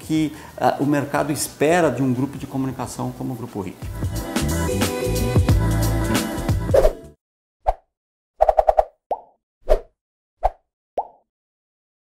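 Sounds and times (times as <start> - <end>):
cartoon pop sound effects: 7.6 - 9.8, 10.4 - 11.2.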